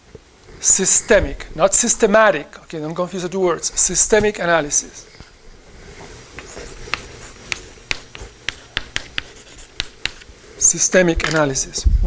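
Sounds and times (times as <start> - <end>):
chalk clicking on blackboard: 6.3 - 10.3.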